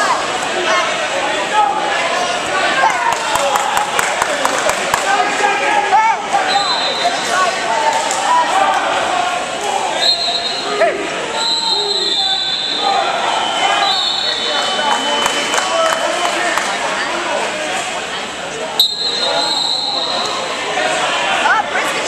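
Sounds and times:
overlapping voices: 0.0s - 18.6s
whistle or buzzer tones: 18.8s - 20.1s.

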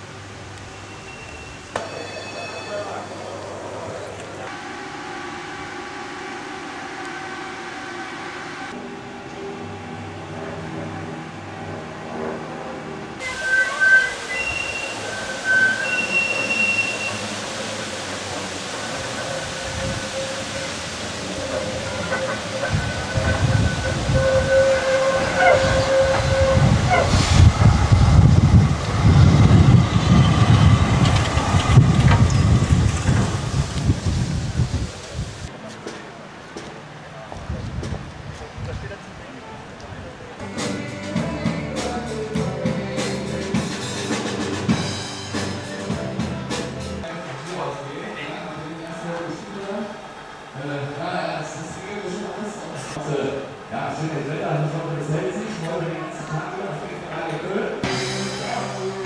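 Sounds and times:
tram wheel squeals: 0.0s - 35.5s
multi-tone hum: 0.0s - 35.6s
wheels rumbling on rails: 3.2s - 40.4s.

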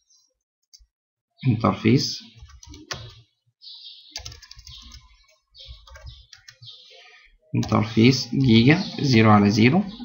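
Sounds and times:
typing on a computer keyboard: 2.4s - 3.2s, 4.2s - 5.1s, 5.7s - 6.6s.

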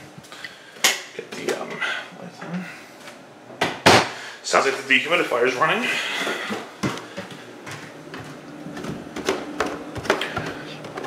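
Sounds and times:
dehumidifier humming: 0.0s - 11.0s
footsteps on stairs: 6.2s - 11.0s.

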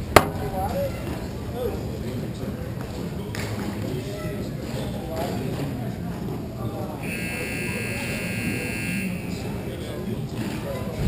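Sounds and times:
scoreboard buzzer: 7.0s - 9.9s.

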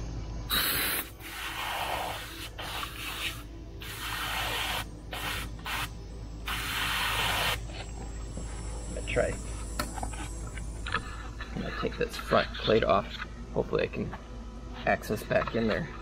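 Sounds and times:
aerosol spray can hissing: 0.5s - 7.7s.

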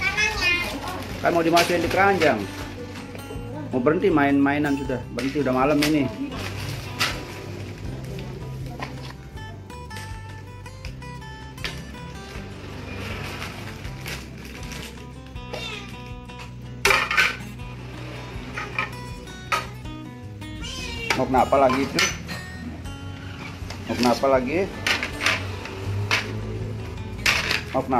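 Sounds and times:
soft background music: 0.0s - 27.9s
dishes clinking and clattering: 16.4s - 17.6s, 18.4s - 19.8s, 21.1s - 22.7s, 24.8s - 26.5s, 27.2s - 27.8s.

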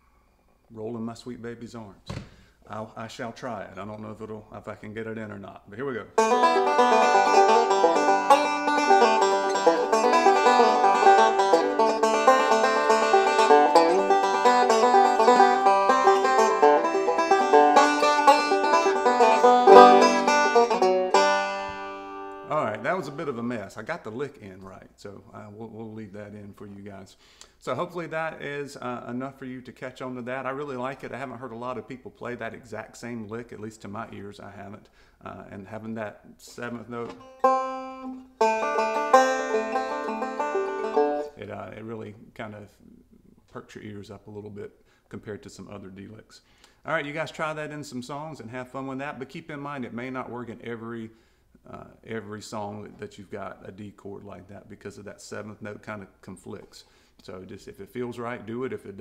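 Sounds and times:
banjo picked fast: 6.1s - 23.6s, 37.0s - 41.4s.

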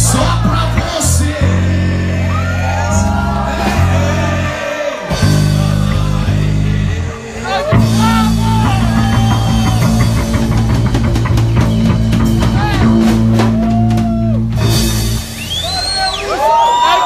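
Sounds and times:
live rock band playing: 0.0s - 16.1s
voices shouting and whooping: 2.1s - 5.1s, 7.4s - 11.2s, 12.4s - 14.4s, 15.6s - 17.0s.

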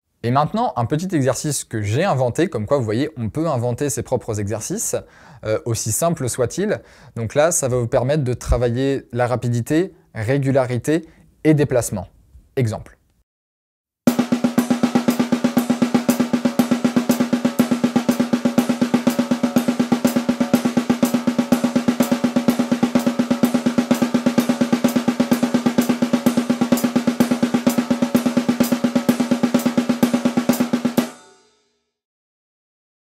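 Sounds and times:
fast snare drum strokes: 14.1s - 31.4s.

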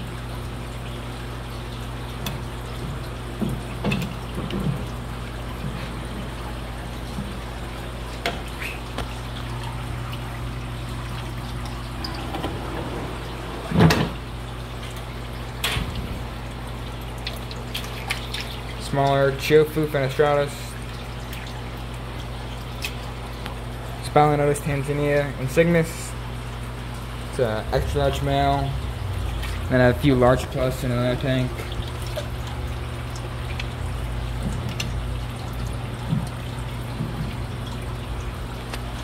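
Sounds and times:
tank equipment humming: 0.0s - 18.8s, 20.3s - 39.0s
water sloshing and dripping: 0.0s - 39.0s
water splashes: 0.0s - 39.0s.

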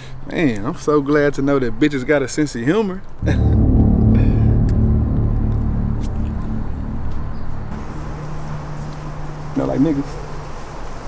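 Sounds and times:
vehicle engine rumbling: 3.2s - 9.6s.

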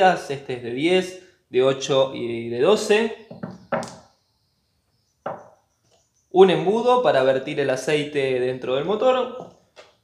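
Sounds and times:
hard object knocking on tabletop: 3.3s - 4.0s, 5.2s - 5.6s.

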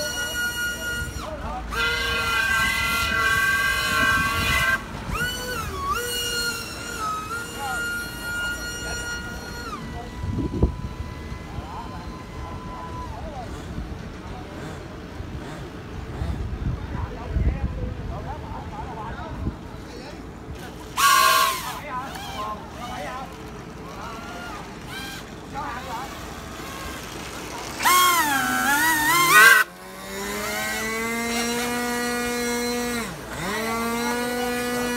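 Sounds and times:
electric motor and propeller whining: 0.0s - 16.8s, 19.6s - 34.9s.

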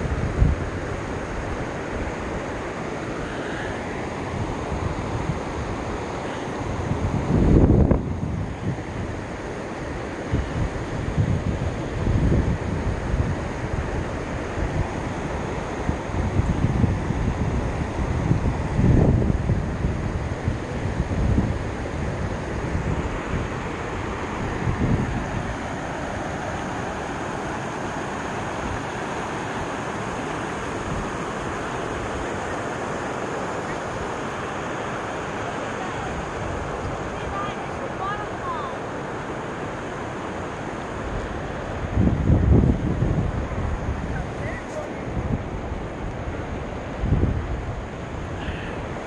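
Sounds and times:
waterfall rushing hiss: 0.0s - 49.0s
wind buffeting microphone: 6.6s - 9.4s, 10.2s - 32.8s, 40.9s - 49.0s.

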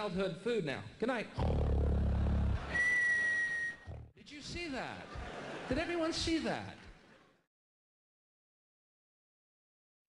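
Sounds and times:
man snoring: 1.4s - 2.6s
high whistle on out-breath: 2.7s - 3.9s.

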